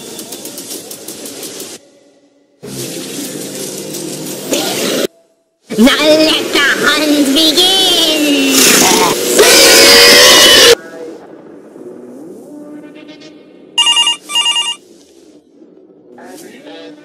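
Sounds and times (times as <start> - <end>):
music: 0.0 - 5.6
loud scream: 9.4 - 10.8
telephone ringing: 13.8 - 14.8.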